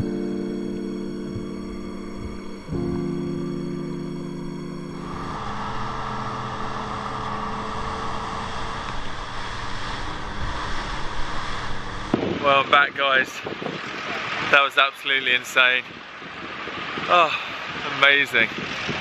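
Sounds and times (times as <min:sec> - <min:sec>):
background music with held chords: 0:00.0 - 0:08.9
outboard motors humming: 0:00.0 - 0:19.0
rush of wind and water: 0:05.0 - 0:19.0.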